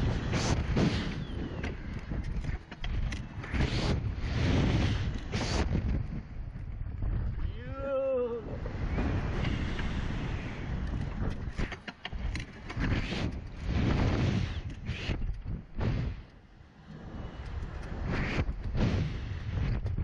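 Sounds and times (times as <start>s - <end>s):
wind rushing over microphone: 0.0s - 20.0s.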